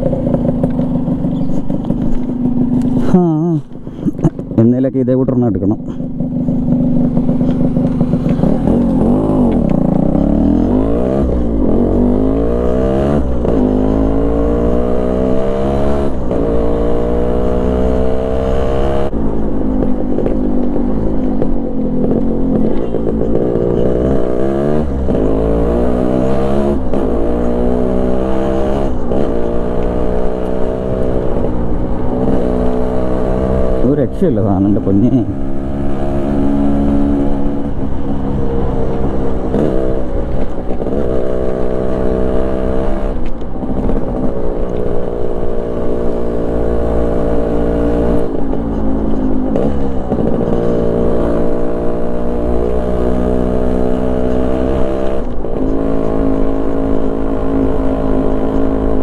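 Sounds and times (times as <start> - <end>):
two-stroke motorcycle engine accelerating: 0.0 - 4.8, 5.5 - 59.0.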